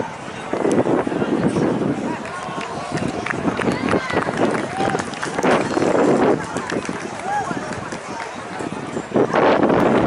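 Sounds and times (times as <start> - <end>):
people talking outdoors: 0.0 - 10.0.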